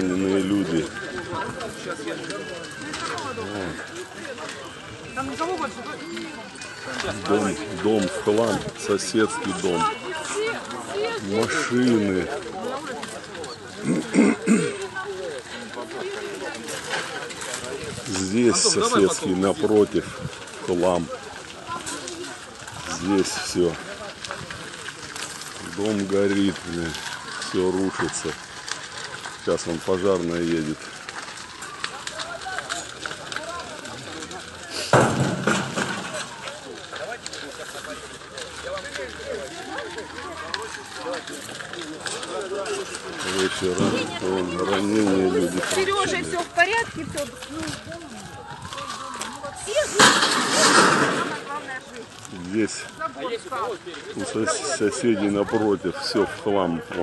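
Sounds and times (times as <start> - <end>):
outdoor noise: 0.0 - 57.0
quiet talking: 0.0 - 57.0
man clearing his throat: 13.9 - 14.8.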